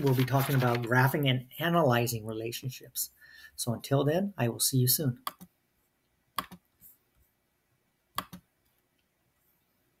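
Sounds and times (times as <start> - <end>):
computer mouse clicking: 6.4 - 6.6, 8.1 - 8.5.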